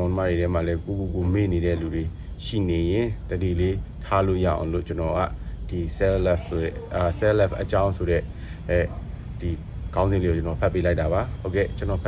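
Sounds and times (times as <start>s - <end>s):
crickets droning: 0.0s - 12.0s
man speaking: 0.0s - 12.0s.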